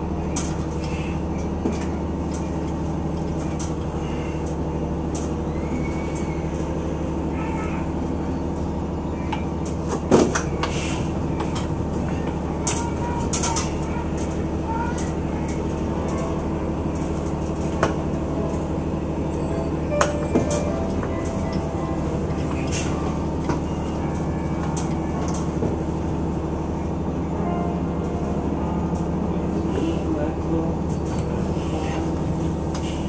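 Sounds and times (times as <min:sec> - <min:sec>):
vehicle engine running: 0:00.0 - 0:33.0.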